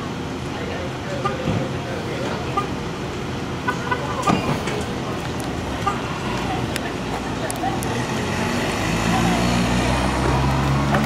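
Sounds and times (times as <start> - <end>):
outdoor noise: 0.0 - 11.0
vehicle engine humming: 0.0 - 11.0.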